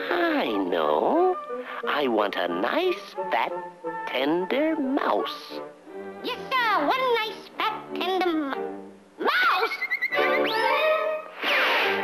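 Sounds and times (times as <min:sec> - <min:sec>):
orchestral cartoon music: 0:00.0 - 0:09.0, 0:09.6 - 0:12.0
rising slide: 0:10.2 - 0:12.0.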